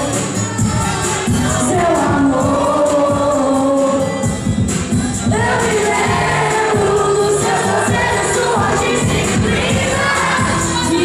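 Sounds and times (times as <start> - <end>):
backing track with a beat: 0.0 - 11.0.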